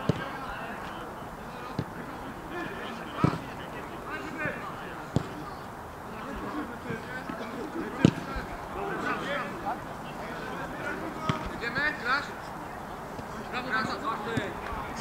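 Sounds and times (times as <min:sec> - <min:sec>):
football kick thuds: 0:00.0 - 0:00.4, 0:01.7 - 0:02.0, 0:03.1 - 0:03.6, 0:04.4 - 0:05.4, 0:08.0 - 0:08.4, 0:11.2 - 0:11.7
distant players calling out: 0:00.0 - 0:15.0.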